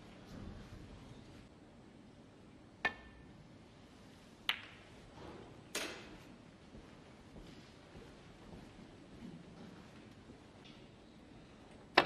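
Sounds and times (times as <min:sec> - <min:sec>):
snooker balls clicking: 0:04.4 - 0:05.0.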